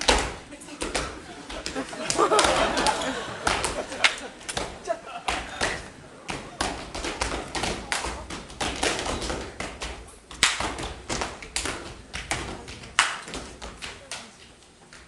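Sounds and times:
hands and feet striking stage floor: 0:00.0 - 0:15.0.

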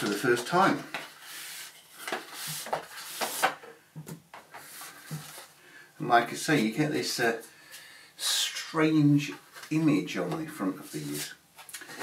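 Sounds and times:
cardboard sliding off polystyrene: 0:01.1 - 0:03.6.

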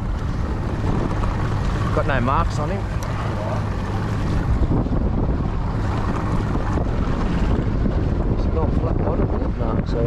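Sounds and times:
outboard motor running: 0:00.0 - 0:10.0
water washing in wake: 0:00.0 - 0:10.0
wind buffeting microphone: 0:00.0 - 0:10.0.

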